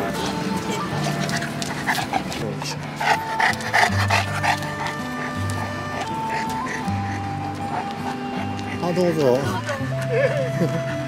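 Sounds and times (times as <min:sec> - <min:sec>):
instrumental music with held notes: 0:00.0 - 0:11.0
dog panting: 0:00.1 - 0:10.5.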